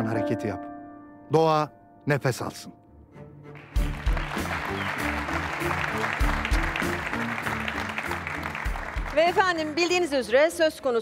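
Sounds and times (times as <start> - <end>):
studio audience applauding: 3.5 - 10.6.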